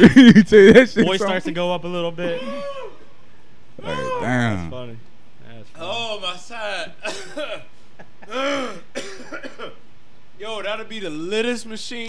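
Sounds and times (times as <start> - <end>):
drawn-out voiced sound: 3.8 - 4.8
man clearing his throat: 7.0 - 7.7, 8.3 - 9.8
man coughing while laughing: 7.0 - 9.8.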